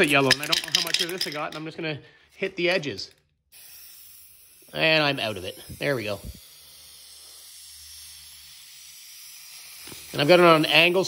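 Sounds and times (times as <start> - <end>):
spray paint can hissing: 3.5 - 11.0.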